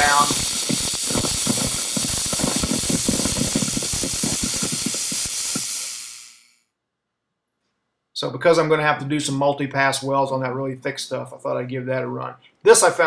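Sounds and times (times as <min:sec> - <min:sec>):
welding arc hissing and crackling: 0:00.0 - 0:06.6.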